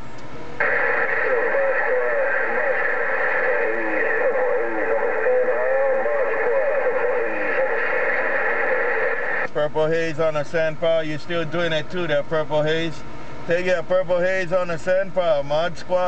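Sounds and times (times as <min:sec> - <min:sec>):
garbled radio voice: 0:00.6 - 0:12.8
radio hiss: 0:00.6 - 0:16.0.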